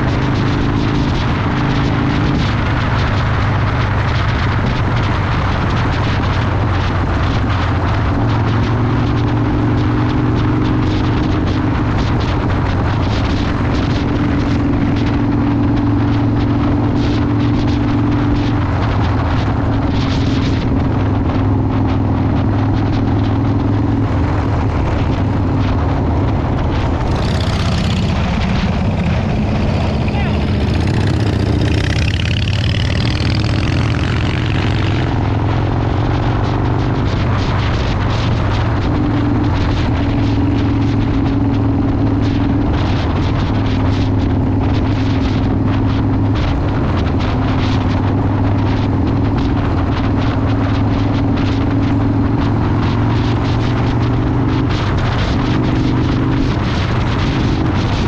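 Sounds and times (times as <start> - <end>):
motorcycle engine cruising: 0.0 - 58.0
wind buffeting microphone: 0.0 - 58.0.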